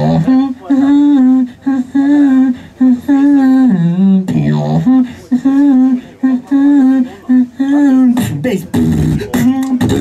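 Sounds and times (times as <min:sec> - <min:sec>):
person humming into microphone: 0:00.0 - 0:10.0.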